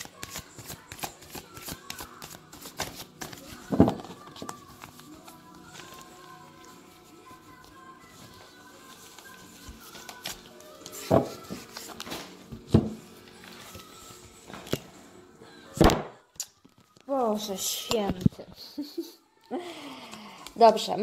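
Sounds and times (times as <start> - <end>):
cards shuffled on a table: 0.0 - 6.3, 8.2 - 14.9
soft music with held tones: 0.0 - 21.0.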